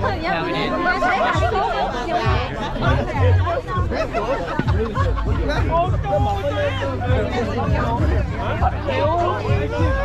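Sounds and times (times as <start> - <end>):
background music with bass: 0.0 - 10.0
people chatting: 0.0 - 10.0.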